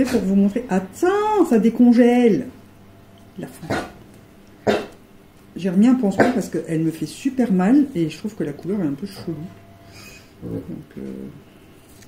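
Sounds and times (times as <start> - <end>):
dog barking: 3.7 - 4.0, 4.6 - 5.0.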